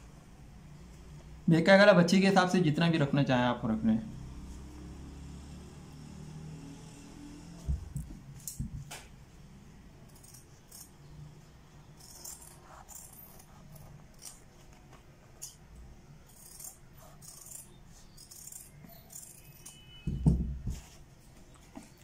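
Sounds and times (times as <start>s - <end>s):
scissors cutting stiff fabric: 10.1s - 10.9s, 12.0s - 14.5s, 16.3s - 20.0s.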